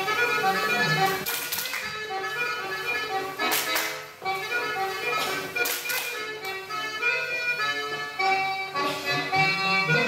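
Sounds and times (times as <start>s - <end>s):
folk dance music: 0.0s - 10.0s
people clapping hands: 1.2s - 2.0s, 3.4s - 4.1s, 5.2s - 6.6s.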